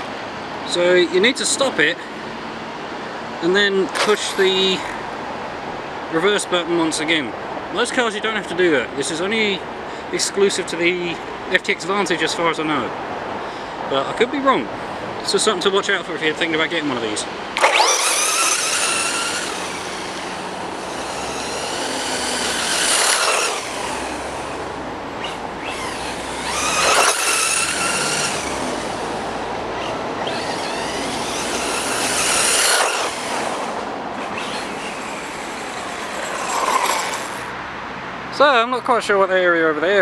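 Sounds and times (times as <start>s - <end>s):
rc car electric motor whining: 3.9s - 4.8s, 17.6s - 37.5s.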